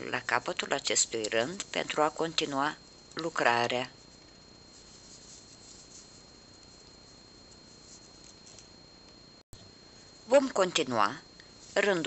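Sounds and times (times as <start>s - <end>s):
thin high whine: 0.0s - 12.0s
crochet hook scratching yarn: 3.1s - 8.7s.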